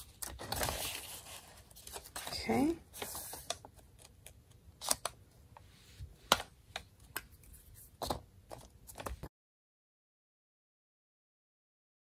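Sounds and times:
paper envelopes rustling: 0.0s - 5.1s.

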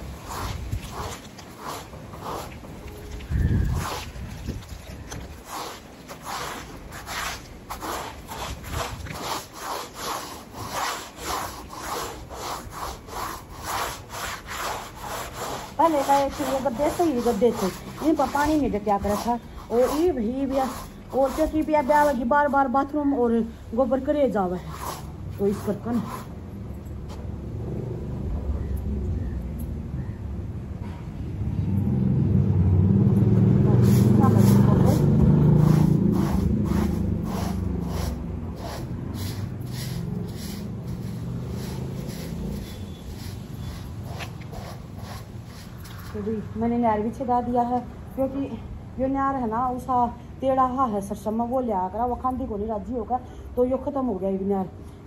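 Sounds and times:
broom sweeping stone floor: 0.0s - 26.5s, 33.6s - 46.5s
wind buffeting microphone: 2.0s - 5.5s.

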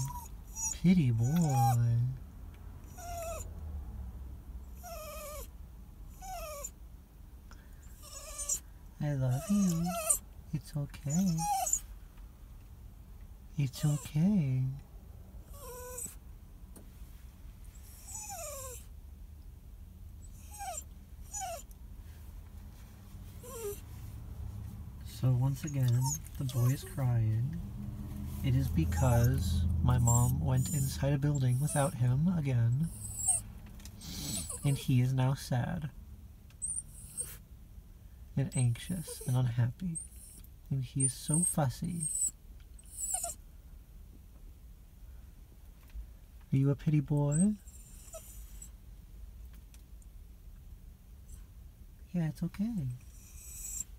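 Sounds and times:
small dog whining: 0.0s - 2.0s, 2.9s - 3.5s, 4.8s - 5.5s, 6.1s - 6.8s, 7.8s - 8.7s, 9.3s - 10.2s, 11.0s - 11.9s, 15.5s - 16.2s, 17.7s - 18.9s, 20.2s - 21.7s, 23.4s - 23.8s, 25.6s - 27.1s, 28.9s - 32.0s, 32.8s - 33.5s, 34.1s - 34.8s, 36.6s - 37.4s, 38.5s - 39.3s, 39.9s - 43.4s, 47.3s - 48.8s, 53.0s - 53.9s.

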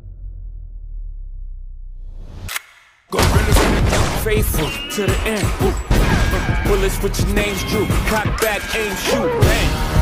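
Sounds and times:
low rumble: 0.0s - 2.4s
music with a voice: 3.1s - 10.0s.

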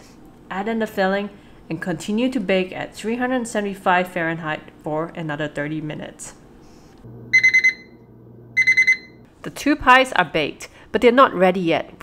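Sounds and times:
kitchen timer beeping: 7.3s - 9.3s.

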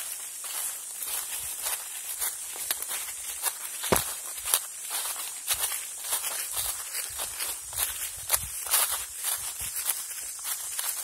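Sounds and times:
footsteps on leaves: 0.0s - 11.0s
steady high hiss: 0.0s - 11.0s.

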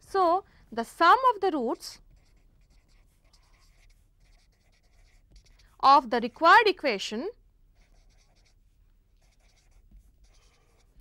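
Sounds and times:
marker writing on paper: 1.2s - 11.0s.

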